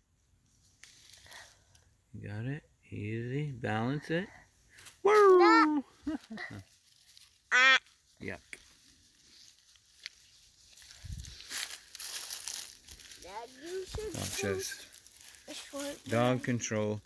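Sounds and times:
footsteps through dry leaves: 0:06.2 - 0:16.6.

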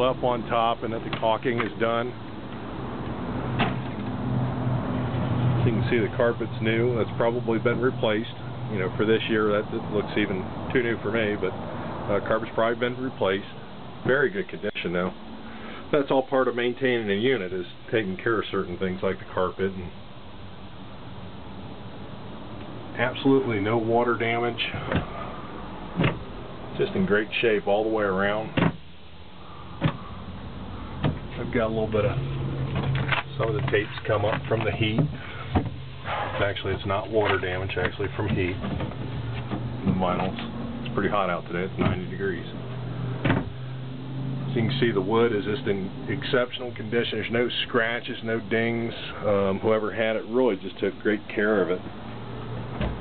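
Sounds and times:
door swinging open: 0:03.6 - 0:04.0, 0:25.9 - 0:26.3, 0:43.2 - 0:43.6, 0:52.7 - 0:53.0
steady low hum: 0:04.9 - 0:53.0.

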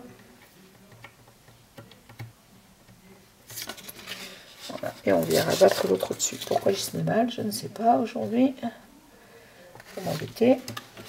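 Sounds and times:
paper rustling and scraping: 0:03.5 - 0:06.9, 0:09.8 - 0:11.0.

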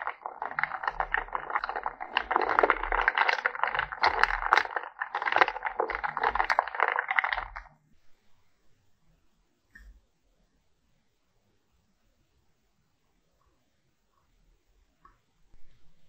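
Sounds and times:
stirring in a glass jar: 0:00.0 - 0:07.7.

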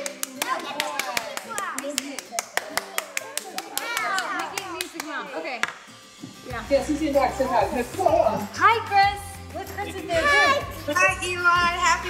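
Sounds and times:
people clapping: 0:00.0 - 0:05.5
excited child and adult voices: 0:00.3 - 0:05.6, 0:06.5 - 0:12.0.

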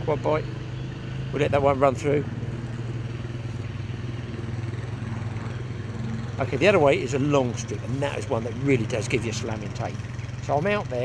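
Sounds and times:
quad bike engine passing: 0:00.0 - 0:11.0.

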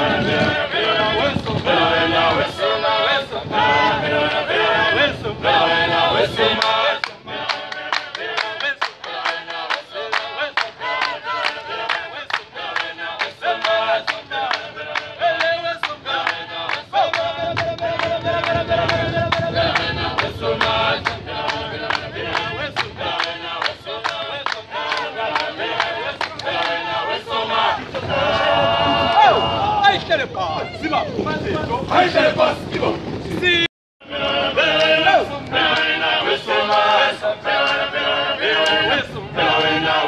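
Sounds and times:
group of voices singing: 0:00.0 - 0:30.1, 0:31.4 - 0:40.0
rhythmic hand-clapping: 0:06.4 - 0:28.5, 0:34.7 - 0:40.0.

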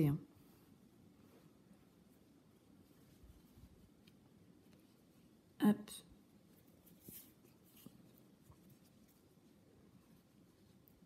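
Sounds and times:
fingers rustling stuffing: 0:00.5 - 0:05.5, 0:06.2 - 0:11.0.

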